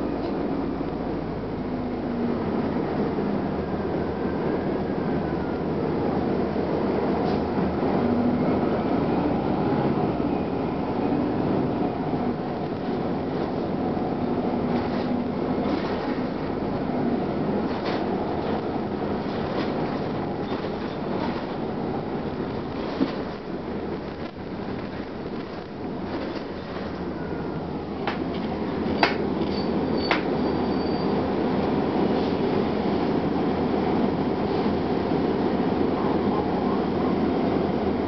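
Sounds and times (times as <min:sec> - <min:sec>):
bus engine running: 0:00.0 - 0:38.0
road noise: 0:00.0 - 0:38.0.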